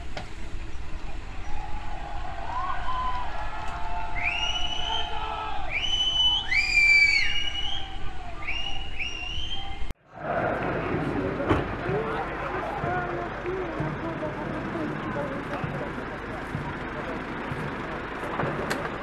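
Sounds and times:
vehicle engines humming: 0.0 - 9.1, 9.9 - 19.0
distant voices: 0.0 - 19.0
shrill sweeping whistles: 4.0 - 9.9.

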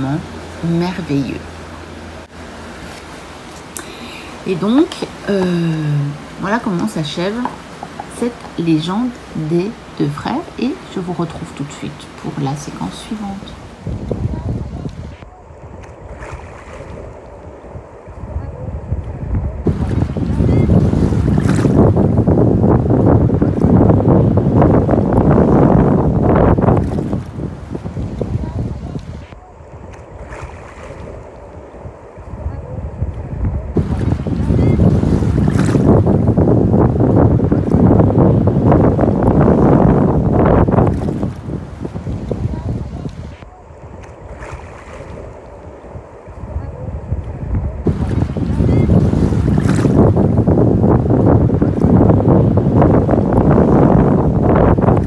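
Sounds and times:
seawater washing in shallows: 0.0 - 55.0
wind on microphone: 0.0 - 55.0.

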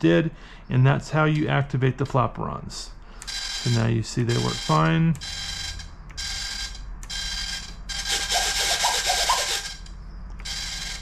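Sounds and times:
servos whining: 3.2 - 11.0.

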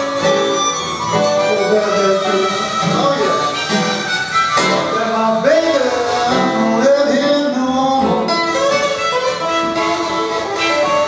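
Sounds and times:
harmonica playing blues notes: 0.0 - 11.0
strummed acoustic guitar: 0.0 - 11.0.

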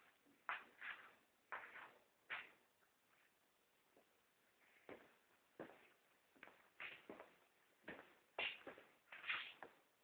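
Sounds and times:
faint knocks and scuffs: 0.0 - 9.9.

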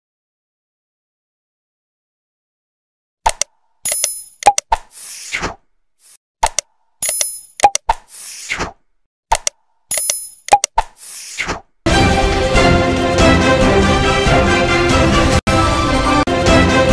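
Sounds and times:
pop sound effect: 3.3 - 5.6, 6.4 - 11.6
sharp mouse clicks: 3.3 - 11.7.

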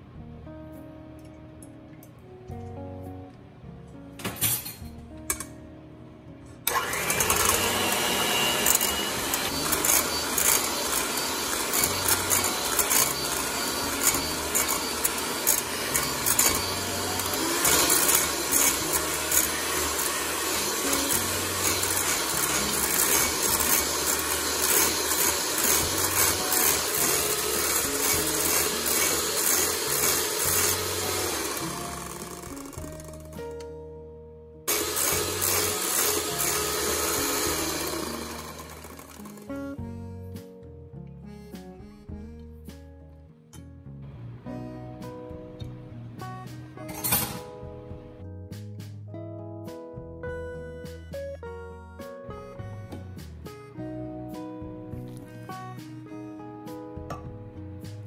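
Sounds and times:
background music: 0.0 - 58.0
electric hand mixer running: 6.7 - 33.6, 34.7 - 39.7.

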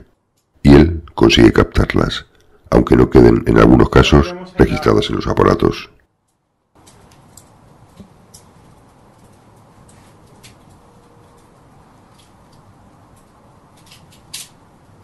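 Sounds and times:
room tone hiss: 6.7 - 15.0.

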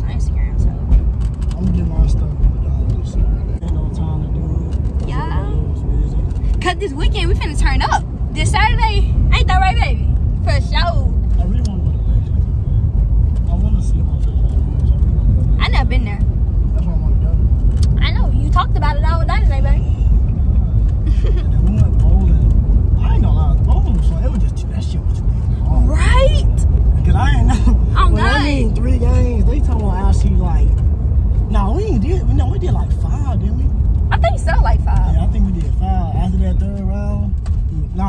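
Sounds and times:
car cabin rumble: 0.0 - 38.0.

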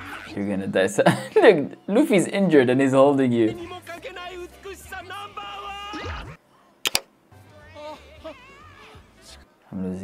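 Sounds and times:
background music: 0.0 - 10.0
sharp clicks: 6.8 - 7.1.

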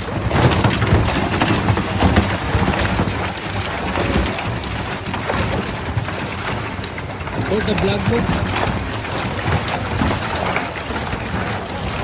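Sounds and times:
fish thrashing in water: 0.0 - 12.0
water spilling from net: 0.0 - 12.0.

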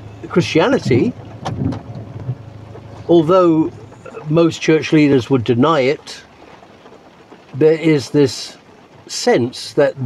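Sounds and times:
low hum in van cabin: 0.0 - 10.0.

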